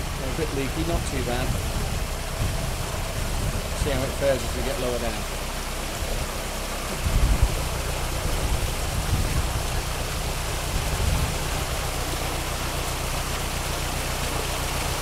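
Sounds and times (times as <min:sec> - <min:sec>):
low rumble: 0:00.0 - 0:15.0
water gushing and splashing: 0:00.0 - 0:15.0.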